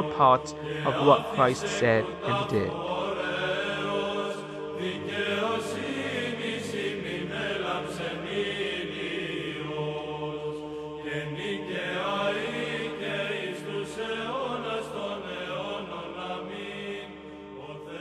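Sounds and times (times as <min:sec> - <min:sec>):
slow chanted singing: 0:00.0 - 0:18.0.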